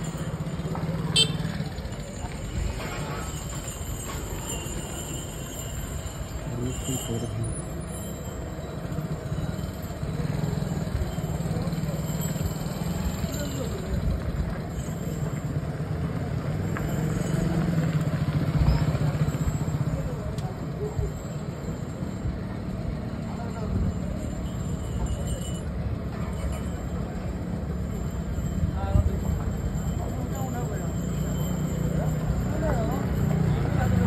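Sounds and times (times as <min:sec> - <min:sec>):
motorbike engines rumbling: 0:00.0 - 0:34.0.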